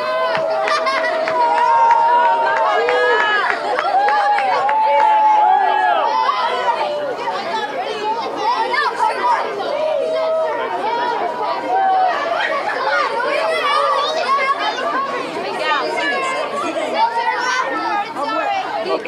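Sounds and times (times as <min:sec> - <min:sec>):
boys chattering and calling out: 0:00.0 - 0:19.0.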